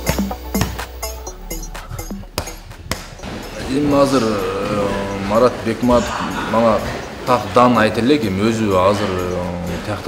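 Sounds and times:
backing music: 0.0 - 10.0
man speaking: 3.5 - 10.0.

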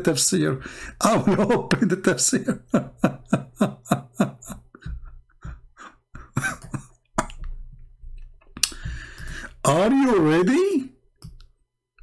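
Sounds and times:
computer mouse clicks: 11.2 - 11.6.

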